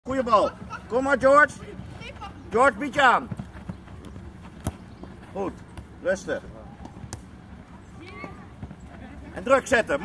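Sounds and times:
football being kicked: 0:03.2 - 0:05.9.

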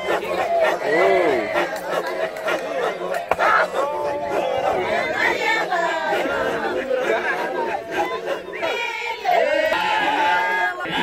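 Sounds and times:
men chanting and calling out: 0:00.0 - 0:11.0.

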